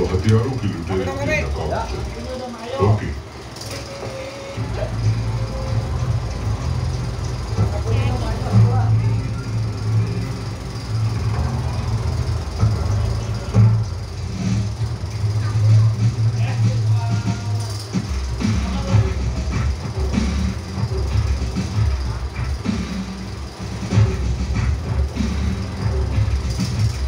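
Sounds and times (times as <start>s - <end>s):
heavy low bass: 0.0s - 27.0s
music over loudspeakers: 0.0s - 27.0s
voices: 0.0s - 27.0s.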